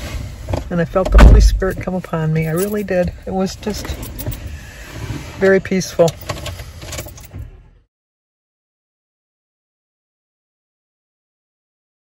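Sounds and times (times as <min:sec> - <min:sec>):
low rumble inside car cabin: 0:00.2 - 0:04.7
person speaking: 0:00.7 - 0:03.9.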